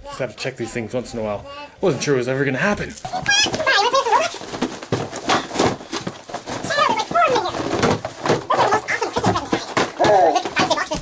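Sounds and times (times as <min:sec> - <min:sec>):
cardboard boxes knocking and scuffing: 0:03.1 - 0:11.0.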